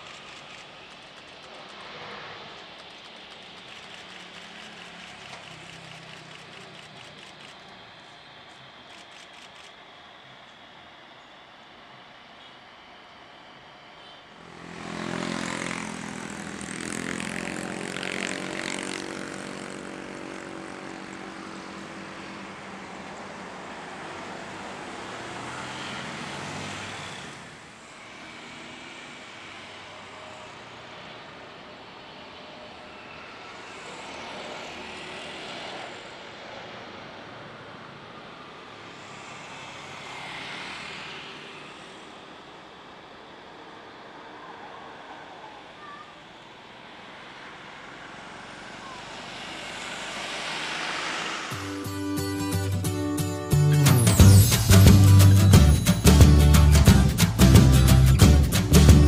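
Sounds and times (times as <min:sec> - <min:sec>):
jet engines roaring: 0:00.0 - 0:12.0
jet engines on approach: 0:00.0 - 0:51.9.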